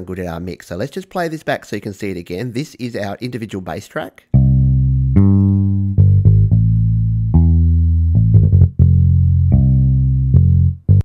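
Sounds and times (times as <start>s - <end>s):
electric bass line: 4.3s - 11.0s.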